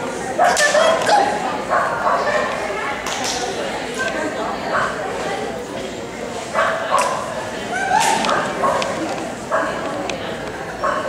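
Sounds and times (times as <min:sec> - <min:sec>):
dog barking: 0:01.7 - 0:02.6, 0:06.6 - 0:07.2, 0:08.3 - 0:08.9, 0:09.5 - 0:09.8, 0:10.8 - 0:11.0.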